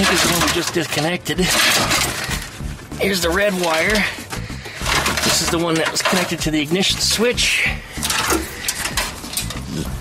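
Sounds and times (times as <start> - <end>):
electrical wires clicking and rattling: 0.0 - 9.8.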